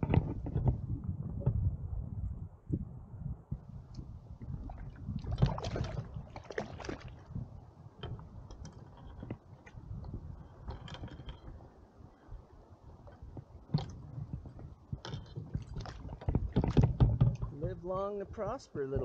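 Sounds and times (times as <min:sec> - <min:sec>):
wind rumble on microphone: 0:00.0 - 0:19.0
water splashing and lapping: 0:04.3 - 0:17.6
gear knocks and clicks: 0:08.0 - 0:11.9, 0:13.0 - 0:17.6.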